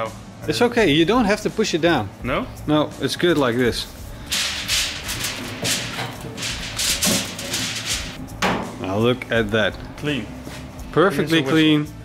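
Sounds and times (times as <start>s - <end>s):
aluminium foil crinkling: 4.2s - 8.2s.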